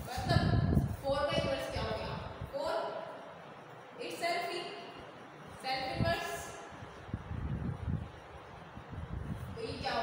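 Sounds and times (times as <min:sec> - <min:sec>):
woman speaking: 0:00.0 - 0:03.2, 0:04.0 - 0:05.0, 0:05.6 - 0:06.7, 0:09.6 - 0:10.0.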